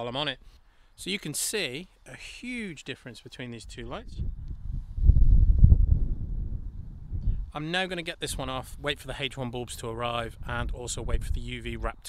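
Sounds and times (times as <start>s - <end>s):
wind buffeting microphone: 3.6s - 7.5s, 8.2s - 12.0s.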